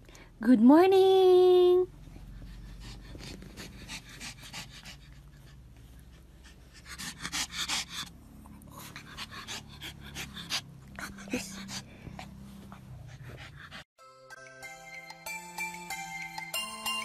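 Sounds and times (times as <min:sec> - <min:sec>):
dog panting: 0:02.0 - 0:13.9.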